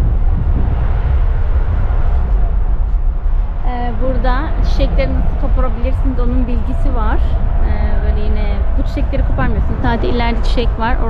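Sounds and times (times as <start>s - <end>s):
loud low rumble: 0.0s - 11.0s
voices talking: 3.7s - 11.0s.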